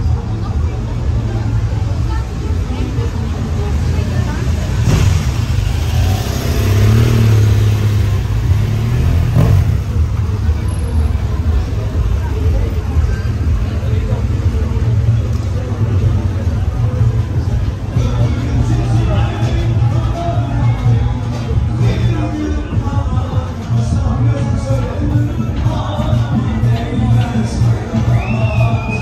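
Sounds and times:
vehicle engine running: 0.0 - 28.3
people talking: 0.0 - 29.0
low bass throb: 3.7 - 29.0.

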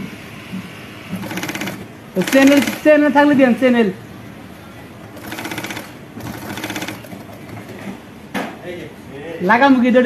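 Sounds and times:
sewing machine stitching: 1.1 - 2.9, 5.1 - 7.9.

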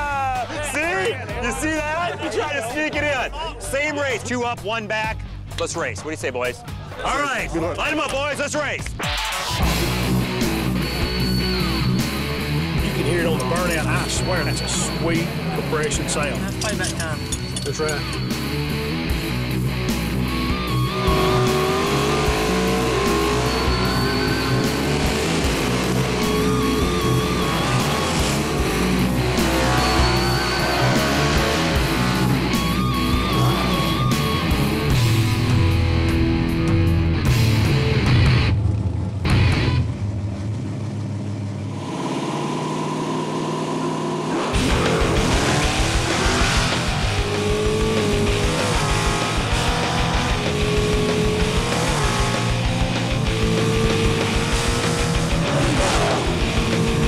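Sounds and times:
background music: 0.0 - 40.0, 44.6 - 57.0
drag car engines revving and idling: 9.4 - 57.0.

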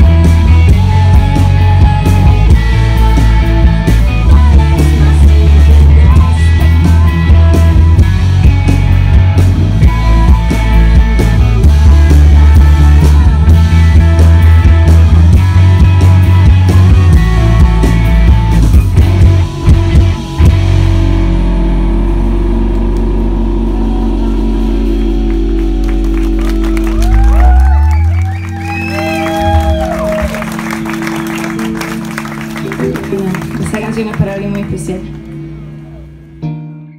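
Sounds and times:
live rock band playing: 0.0 - 36.9.

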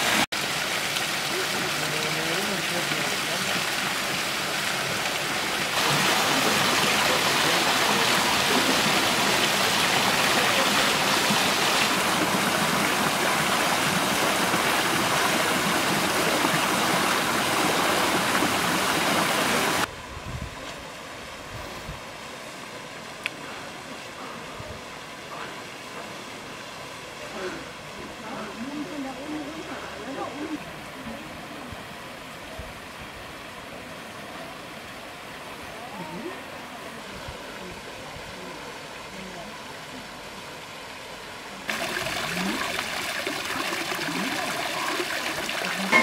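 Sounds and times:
fountain water splashing: 0.0 - 20.0, 20.6 - 46.0.

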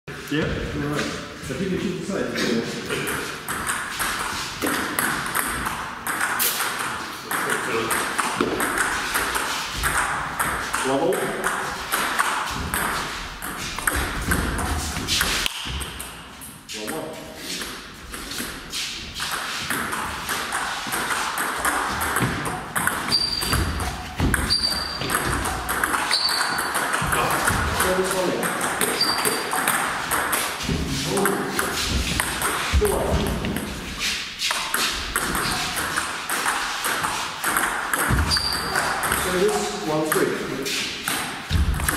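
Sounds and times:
short high squeaks: 23.1 - 23.7, 24.4 - 25.1, 26.0 - 26.8, 28.9 - 29.5, 38.3 - 38.8
voices talking: 27.0 - 29.2.

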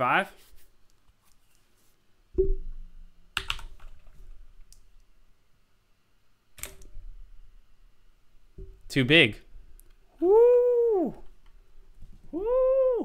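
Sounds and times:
computer keyboard keystrokes: 3.4 - 3.9.

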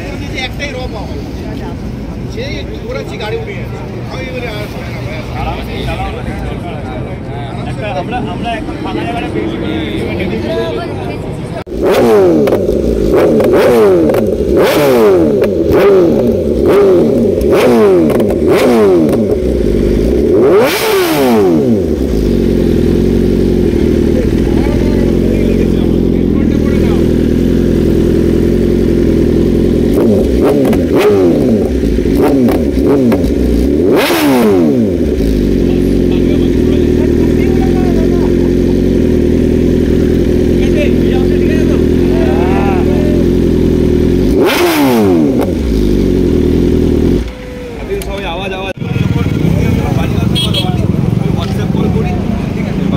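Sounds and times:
motorcycle engine idling: 11.6 - 52.9
motorcycle engine revving: 11.6 - 52.9.

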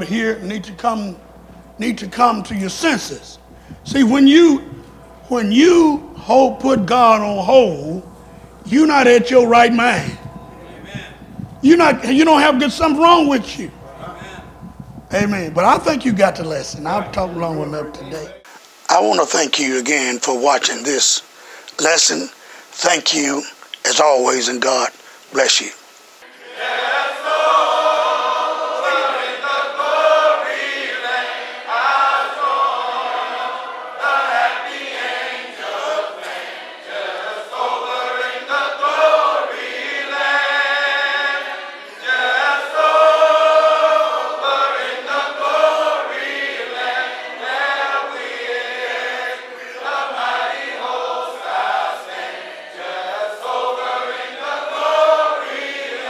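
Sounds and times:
choir singing unaccompanied: 0.0 - 18.6, 26.2 - 56.0.

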